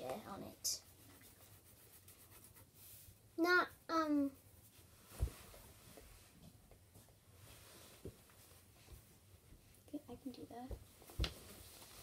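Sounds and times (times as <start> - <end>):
pencil scratching on paper: 0.7 - 2.8.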